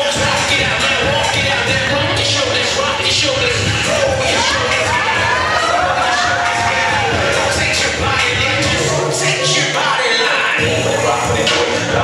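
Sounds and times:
audience cheering and screaming: 0:03.6 - 0:07.5.

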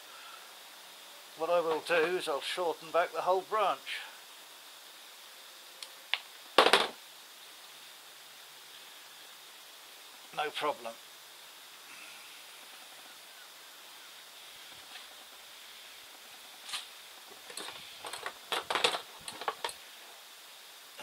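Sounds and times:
faint hiss: 0:00.0 - 0:21.0.

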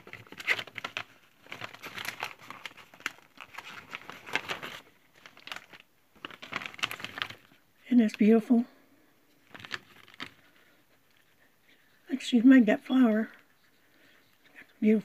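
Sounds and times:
packaging crinkling and rustling: 0:00.0 - 0:08.4, 0:09.3 - 0:11.3.

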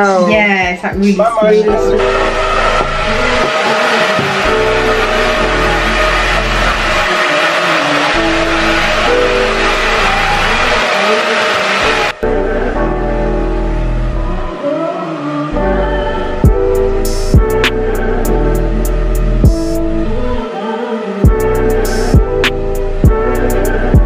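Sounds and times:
background music: 0:00.0 - 0:24.0
hair dryer blowing: 0:01.8 - 0:12.2.

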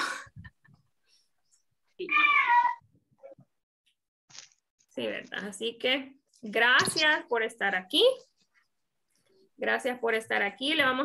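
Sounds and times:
cat meowing: 0:02.0 - 0:02.9.

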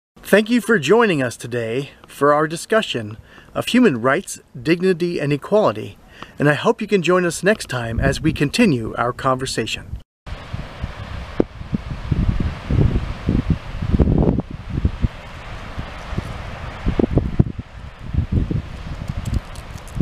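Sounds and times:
wind buffeting microphone: 0:07.9 - 0:08.5, 0:09.8 - 0:20.0.

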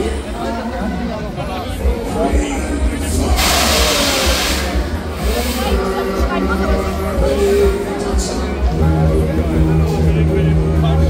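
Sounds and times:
fairground music with bass: 0:00.0 - 0:11.0
loud air hiss from ride: 0:03.2 - 0:06.3.

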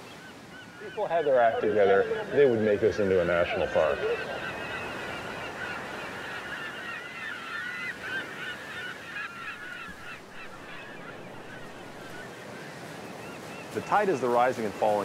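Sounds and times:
gulls calling: 0:00.0 - 0:15.0
surf washing: 0:00.0 - 0:15.0.

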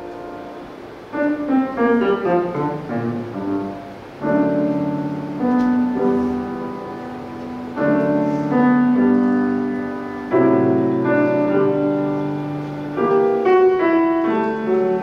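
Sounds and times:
grand piano playing classical music: 0:00.0 - 0:15.0.

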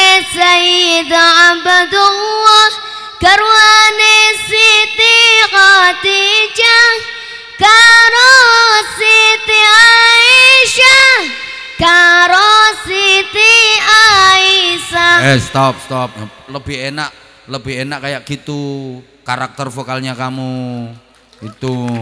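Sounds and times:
boy singing into a microphone: 0:00.0 - 0:17.3.

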